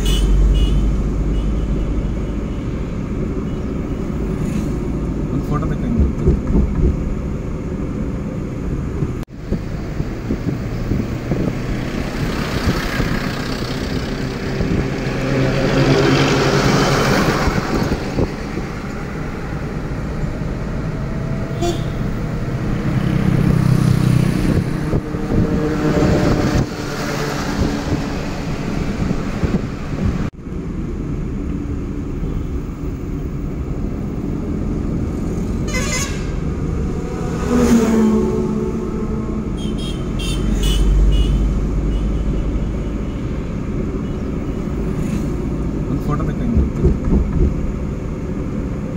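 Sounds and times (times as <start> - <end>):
engine and tyre noise: 0.0 - 48.9
vehicles passing: 0.0 - 48.9.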